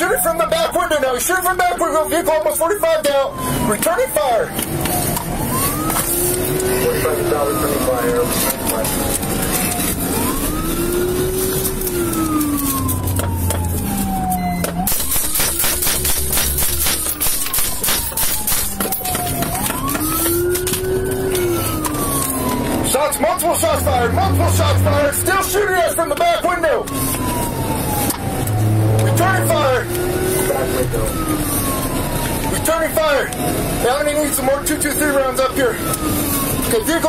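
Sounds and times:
police siren wailing: 0.0 - 37.0
road and engine noise: 0.0 - 37.0.

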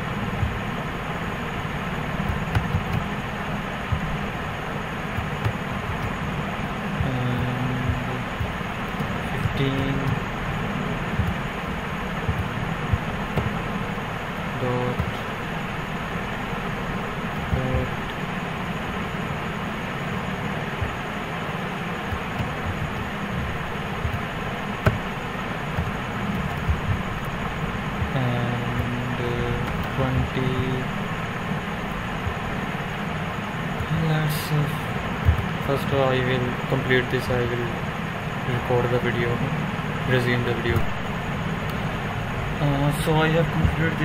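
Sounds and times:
steady background noise: 0.0 - 44.0
keyboard clicks: 2.2 - 3.1.

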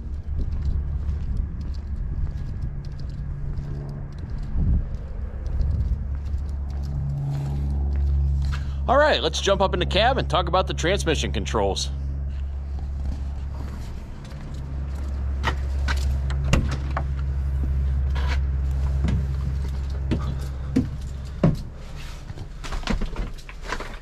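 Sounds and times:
steady low rumble: 0.0 - 24.0
footsteps climbing metal steps: 12.6 - 24.0.

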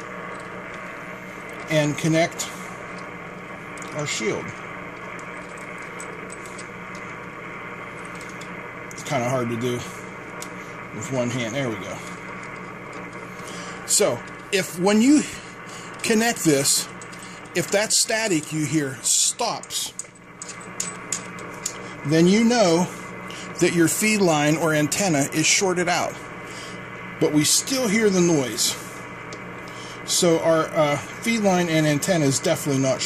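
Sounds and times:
radio static hiss: 0.0 - 20.0, 21.5 - 33.0.

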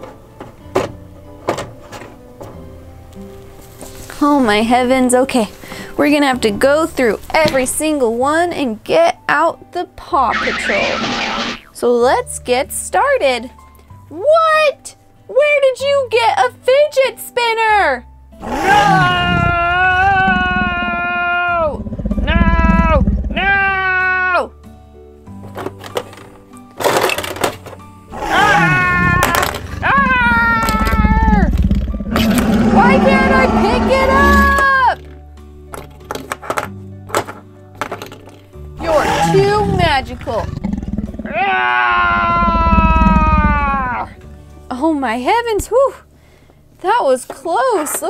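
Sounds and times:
background music: 0.0 - 48.0
person making dinosaur roars: 18.4 - 24.1, 28.1 - 34.8, 38.8 - 44.2
plastic pieces clacking: 25.5 - 27.8, 29.2 - 29.8.

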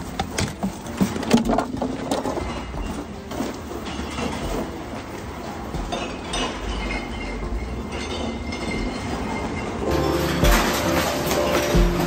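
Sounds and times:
shopping cart wheels rattling: 0.0 - 12.0.

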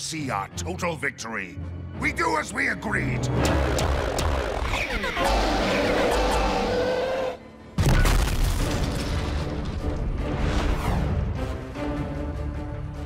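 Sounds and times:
dramatic music with booming hits: 3.0 - 13.0.

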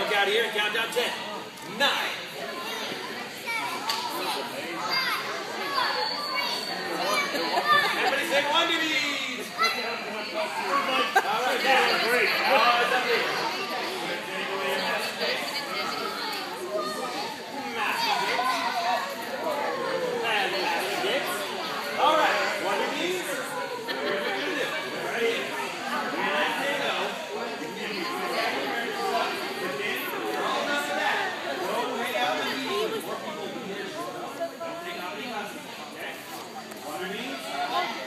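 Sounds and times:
chatter of many voices: 0.0 - 38.0
children and adults talking: 0.0 - 38.0.

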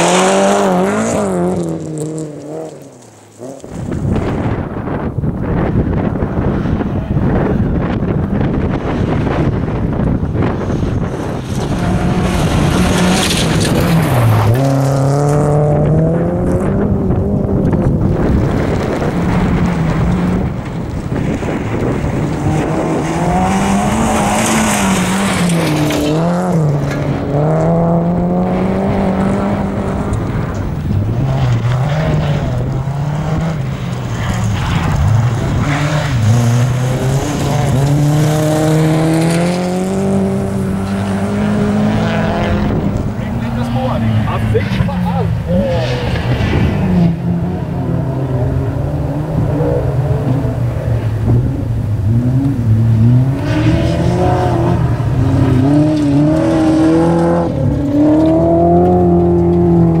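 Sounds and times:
rally car engine revving: 0.0 - 60.0
gravel spraying under tyres: 33.5 - 39.7.

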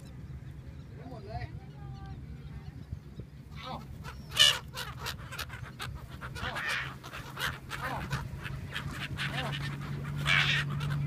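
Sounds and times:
gulls calling: 0.0 - 11.0
low steady hum: 0.0 - 11.0.

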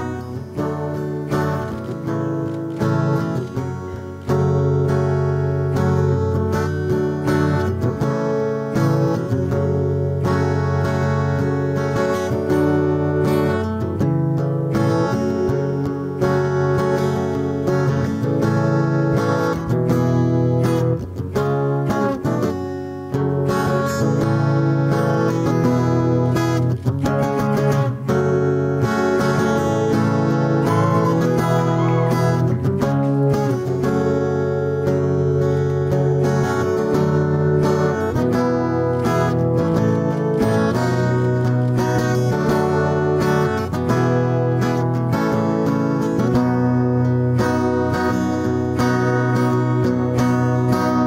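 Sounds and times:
acoustic guitar playing: 0.0 - 51.0.

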